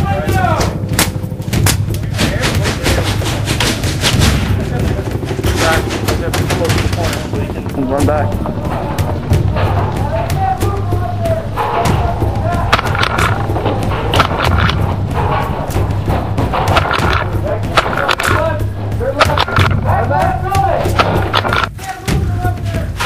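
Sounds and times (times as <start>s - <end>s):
music: 0.0s - 23.0s
voices: 0.0s - 23.0s.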